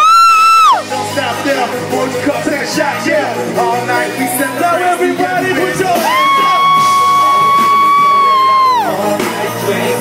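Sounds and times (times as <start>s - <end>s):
hip-hop band playing: 0.0s - 10.0s
rapping: 0.9s - 10.0s.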